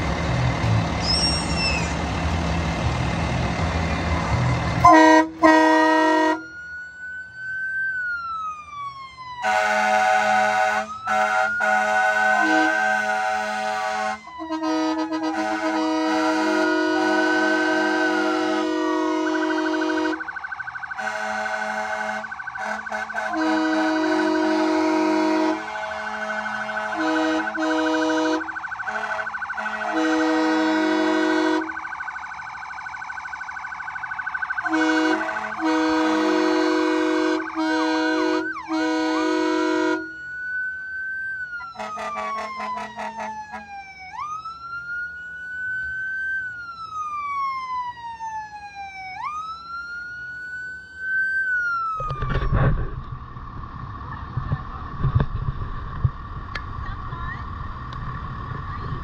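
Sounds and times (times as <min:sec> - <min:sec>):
siren wailing: 0:04.2 - 0:53.6
air horn blasts: 0:04.8 - 0:06.4, 0:09.4 - 0:20.2, 0:21.0 - 0:31.8, 0:34.6 - 0:40.1, 0:41.8 - 0:43.7.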